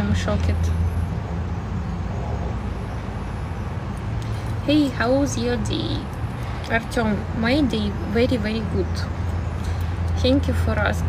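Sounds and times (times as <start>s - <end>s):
low rumble of passing vehicles: 0.0s - 11.0s.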